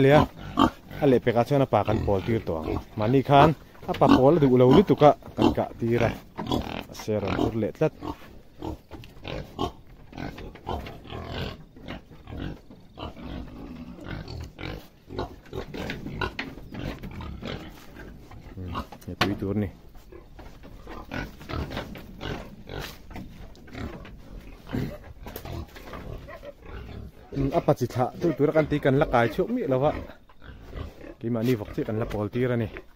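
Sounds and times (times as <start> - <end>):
pigs grunting: 0.0 - 32.9.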